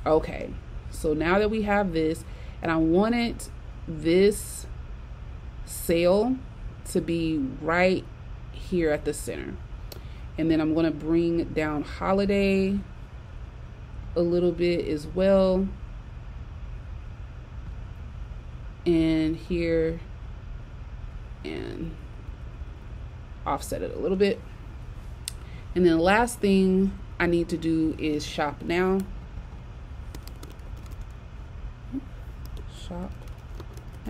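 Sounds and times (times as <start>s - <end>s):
low rumble with faint hiss: 0.0s - 34.0s.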